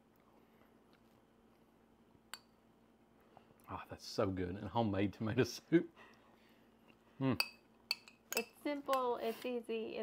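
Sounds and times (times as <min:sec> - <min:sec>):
metal spoon clinking bowl: 0:07.4 - 0:08.6.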